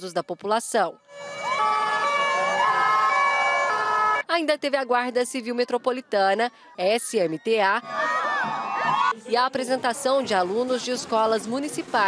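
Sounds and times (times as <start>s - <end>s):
fire truck sirens: 1.1s - 4.2s.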